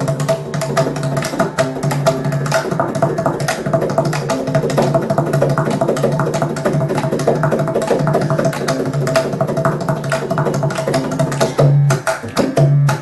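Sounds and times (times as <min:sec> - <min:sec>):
fast hand drum strokes: 0:00.0 - 0:13.0
veena melody: 0:00.0 - 0:13.0.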